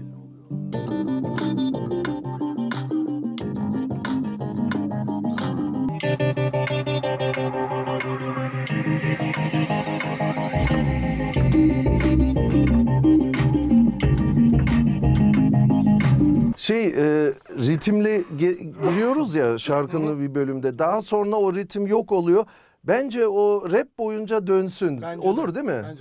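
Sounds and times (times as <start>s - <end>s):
keyboard backing: 0.0s - 16.6s.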